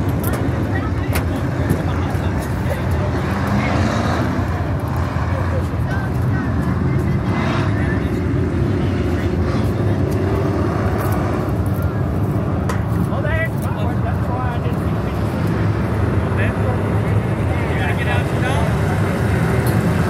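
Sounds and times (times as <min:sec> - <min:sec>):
race car engines droning: 0:00.0 - 0:20.0.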